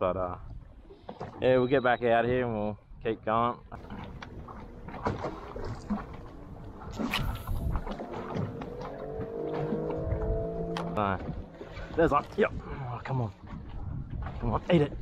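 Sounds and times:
fishing cast: 0:03.8 - 0:11.7.

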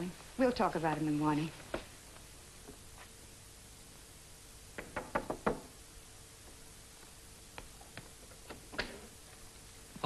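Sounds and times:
knocking on wooden door: 0:04.8 - 0:05.7.

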